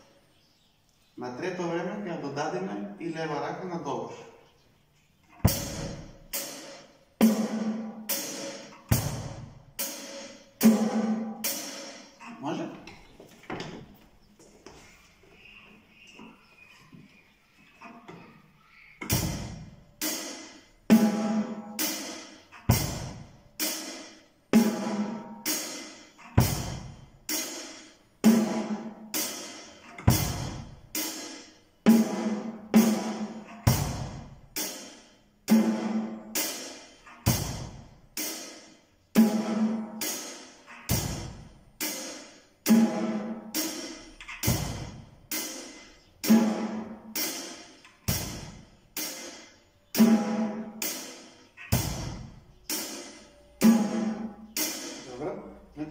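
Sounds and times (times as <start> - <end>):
cymbal hits: 19.1 - 55.1.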